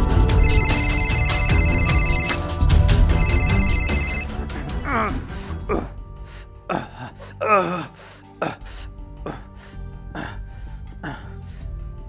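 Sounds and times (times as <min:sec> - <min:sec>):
man gasping for breath: 0:04.6 - 0:11.8
man's strained vocal cry: 0:04.8 - 0:06.0, 0:06.7 - 0:08.7.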